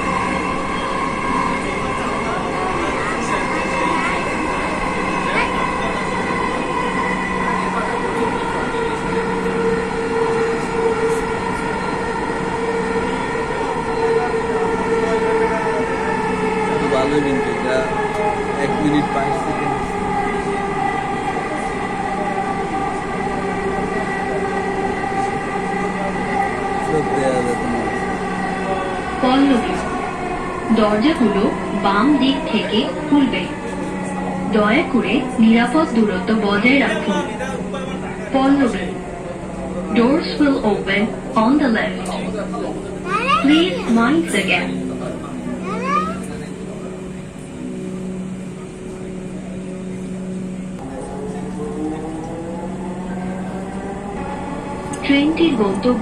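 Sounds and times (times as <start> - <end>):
faint passenger voices: 0.0 - 56.0
steady whine of held tones: 0.0 - 56.0
train running noise: 0.0 - 56.0.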